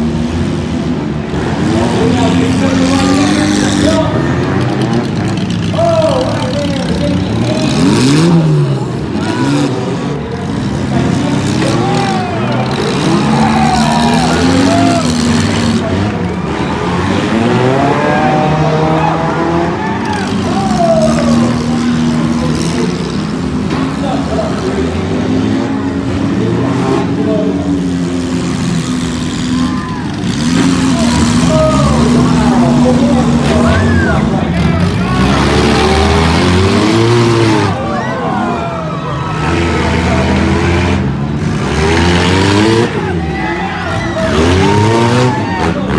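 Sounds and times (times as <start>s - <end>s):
many car engines revving: 0.0s - 45.9s.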